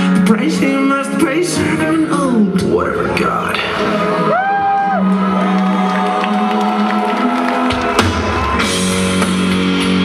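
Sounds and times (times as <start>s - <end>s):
drums: 0.0s - 10.0s
live metal band playing: 0.0s - 10.0s
crowd cheering and whooping: 3.8s - 9.7s.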